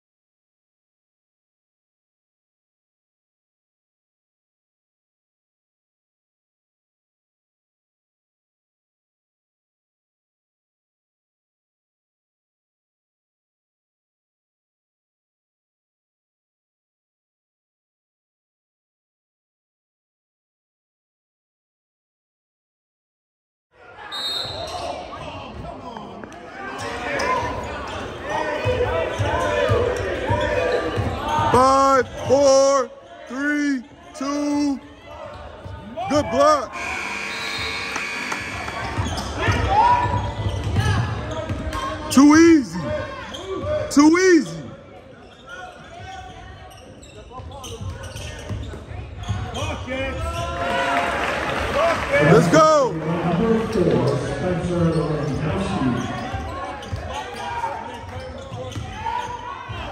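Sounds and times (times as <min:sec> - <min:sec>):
shouts and voices echoing: 0:23.8 - 0:45.0, 0:49.5 - 0:59.9
crowd noise: 0:23.8 - 0:59.9
spectators chattering: 0:23.8 - 0:59.9.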